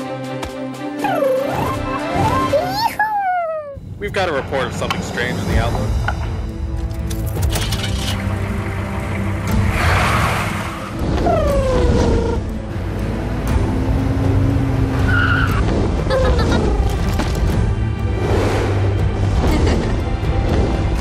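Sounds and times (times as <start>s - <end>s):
background music: 0.0s - 21.0s
tires squealing: 14.8s - 16.4s.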